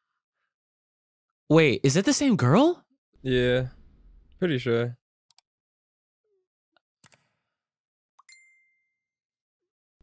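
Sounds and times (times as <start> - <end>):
notification bell ding: 8.3 - 8.9.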